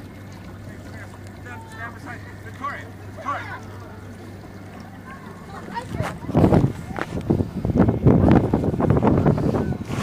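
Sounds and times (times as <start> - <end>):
outdoor background noise: 0.0 - 10.0
steady low hum: 0.0 - 10.0
faint voices: 0.4 - 7.8.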